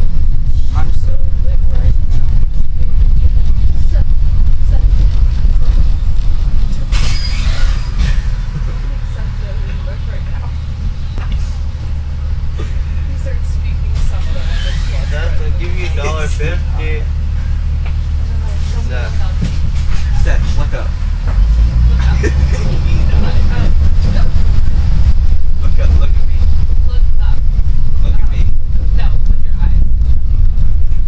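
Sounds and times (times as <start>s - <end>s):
bus engine rumble: 0.0s - 31.0s
faint passengers' voices: 0.0s - 31.0s
road noise: 0.0s - 31.0s.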